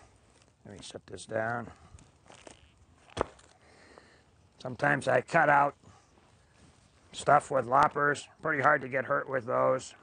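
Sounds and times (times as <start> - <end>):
log set down on wood: 2.3 - 3.5.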